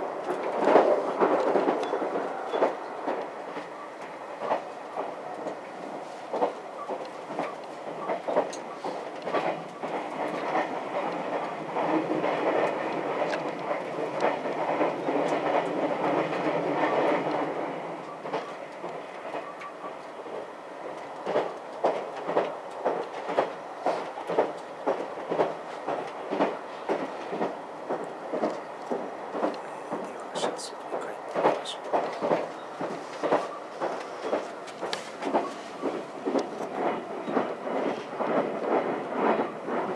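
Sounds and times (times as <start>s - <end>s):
train rumble: 0.0s - 39.9s.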